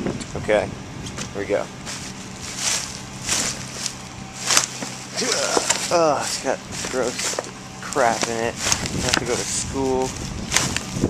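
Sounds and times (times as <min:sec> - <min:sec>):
garbage bags crunching underfoot: 0:01.8 - 0:11.0.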